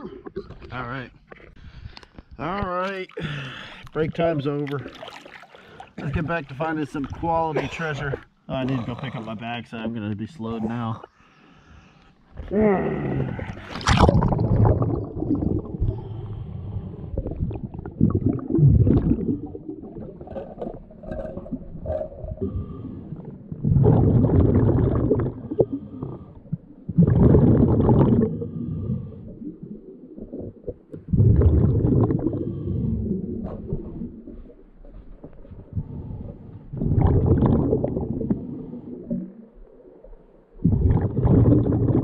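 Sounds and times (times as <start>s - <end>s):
underwater handling noise: 0.0s - 8.4s, 13.4s - 42.0s
scuba regulator bubbling: 12.8s - 42.0s.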